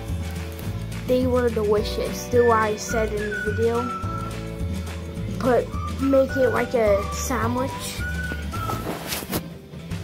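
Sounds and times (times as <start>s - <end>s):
background music with low bass: 0.0s - 10.0s.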